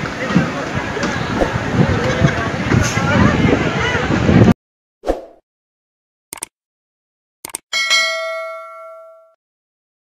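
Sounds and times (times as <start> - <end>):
notification bell ding: 7.7 - 9.4.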